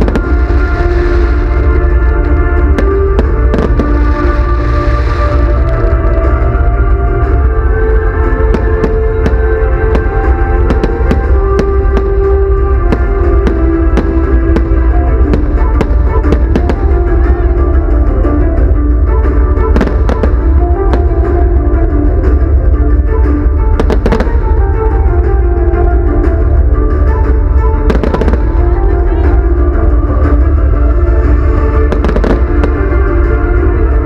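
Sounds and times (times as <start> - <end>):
firework bangs and crackles: 0.0 - 34.0
music with long held notes: 0.0 - 34.0.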